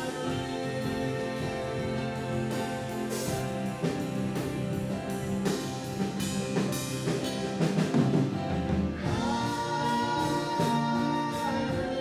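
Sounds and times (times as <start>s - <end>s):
worship singing with keyboard: 0.0s - 12.0s.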